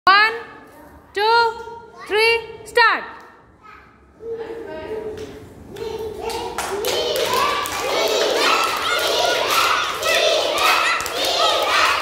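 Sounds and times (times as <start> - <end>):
clapping: 5.2 - 12.0
children shouting a chant: 5.8 - 12.0.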